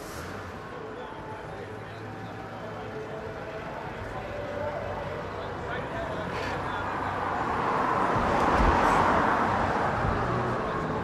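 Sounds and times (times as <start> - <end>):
vehicle passing by: 6.2 - 11.0.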